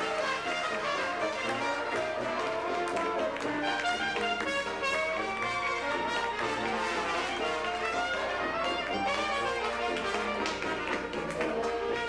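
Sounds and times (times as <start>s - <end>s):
jazz band playing: 0.0s - 12.0s
sharp percussive taps: 0.4s - 12.0s.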